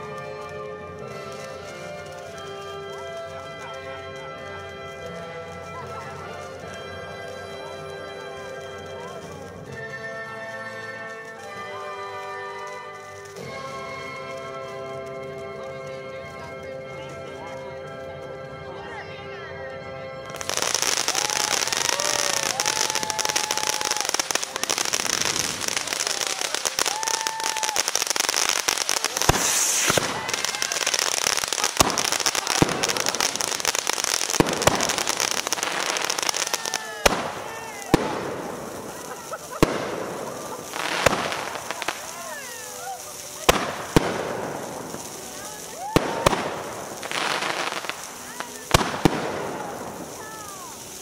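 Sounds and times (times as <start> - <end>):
fireworks crackling: 0.0 - 51.0
fireworks bangs: 8.5 - 15.5, 20.3 - 51.0.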